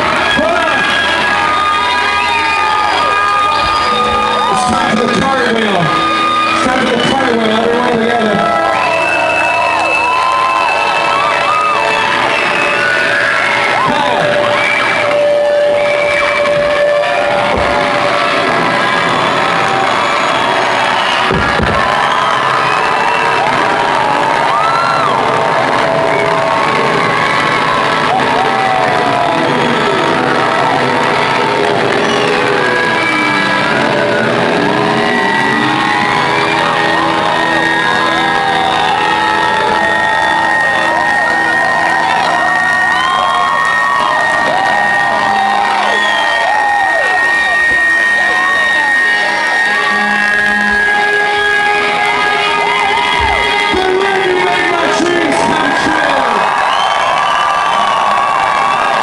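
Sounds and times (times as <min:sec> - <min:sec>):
audience cheering and shouting: 0:00.0 - 0:59.0
live rock band playing: 0:25.2 - 0:43.0, 0:47.2 - 0:56.6.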